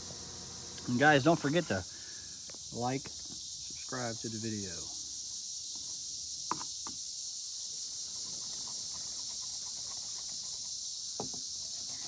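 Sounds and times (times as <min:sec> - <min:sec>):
high-pitched insect drone: 0:00.0 - 0:12.0
screwdriver scraping wood: 0:11.6 - 0:12.0.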